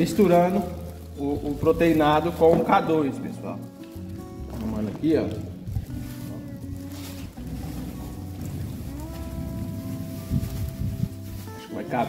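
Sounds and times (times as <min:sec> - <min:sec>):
background music: 0:00.0 - 0:12.0
plastic bag crinkling: 0:00.0 - 0:12.0
powder sliding into bag: 0:03.7 - 0:12.0.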